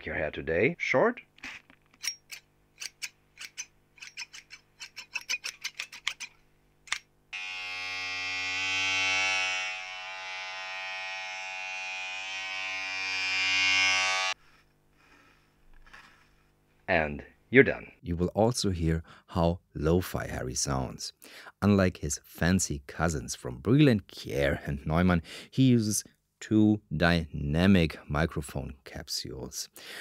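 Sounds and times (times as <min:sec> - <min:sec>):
electric hair trimmer buzzing: 0:07.3 - 0:14.4.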